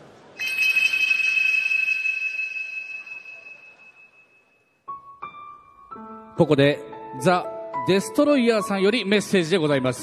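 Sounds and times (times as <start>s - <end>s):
bright bell-like chime: 0.4s - 4.8s.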